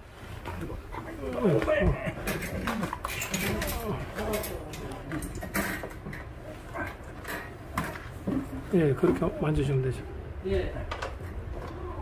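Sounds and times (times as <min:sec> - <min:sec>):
low indistinct voices: 0:00.4 - 0:07.7, 0:08.3 - 0:12.0.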